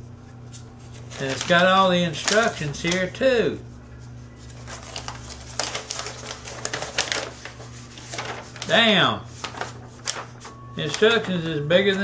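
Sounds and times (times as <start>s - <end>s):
paper rustling and crinkling: 0.5s - 3.2s, 3.8s - 12.0s.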